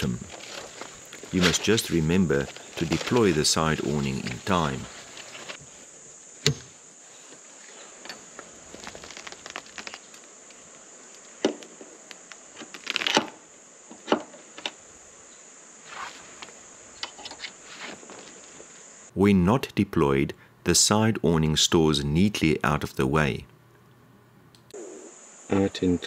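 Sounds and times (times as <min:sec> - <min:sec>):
canvas and poles rustling clicking: 0:00.0 - 0:05.6, 0:07.2 - 0:11.4
high-pitched insect buzz: 0:24.7 - 0:26.0.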